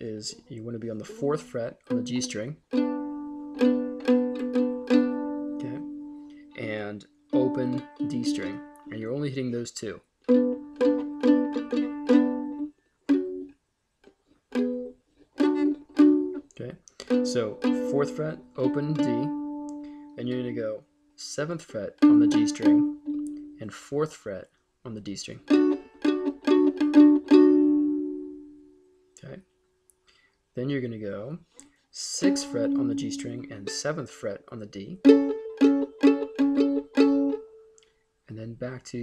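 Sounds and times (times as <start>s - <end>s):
mandolin plucking: 0.3s - 9.5s, 10.3s - 13.6s, 14.5s - 20.7s, 21.7s - 23.6s, 25.4s - 28.6s, 32.2s - 37.8s
mandolin double-stops: 7.4s - 9.0s, 17.0s - 19.8s, 22.0s - 23.4s.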